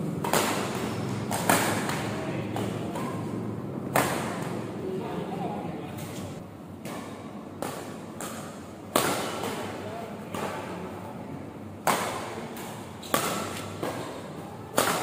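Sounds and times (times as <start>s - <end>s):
rackets striking shuttlecock: 0.0s - 4.8s, 6.8s - 10.8s, 11.8s - 15.0s.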